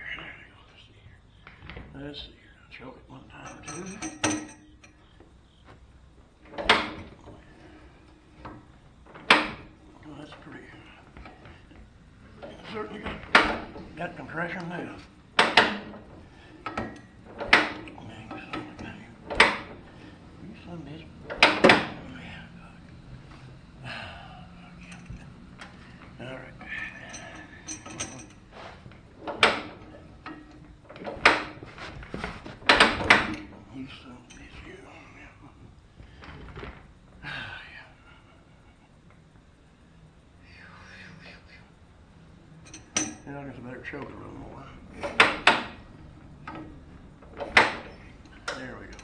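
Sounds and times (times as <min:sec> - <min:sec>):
faint clank: 0:03.4 - 0:05.1, 0:26.6 - 0:31.4, 0:42.6 - 0:43.3
crank clunks: 0:03.4 - 0:05.3, 0:06.4 - 0:22.2, 0:24.8 - 0:34.8, 0:42.7 - 0:43.3, 0:44.8 - 0:49.0
engine being hand-cranked: 0:15.4 - 0:19.9.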